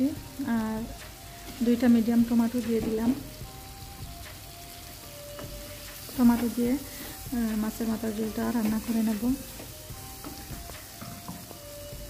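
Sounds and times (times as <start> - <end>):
tomato frying in oil: 0.0 - 12.0
wooden spatula stirring in pan: 0.3 - 12.0.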